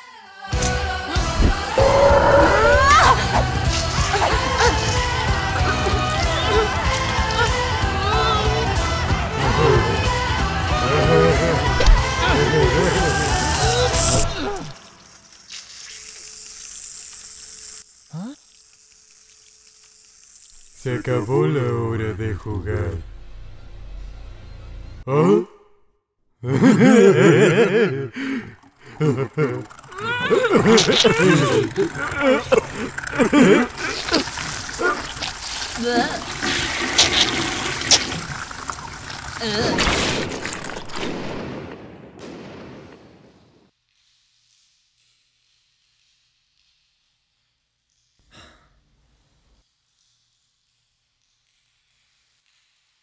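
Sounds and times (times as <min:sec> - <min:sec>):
cartoon monster cries and wails: 0:01.8 - 0:04.9, 0:29.2 - 0:35.2
wet gushing noise: 0:10.8 - 0:21.2, 0:27.0 - 0:41.1.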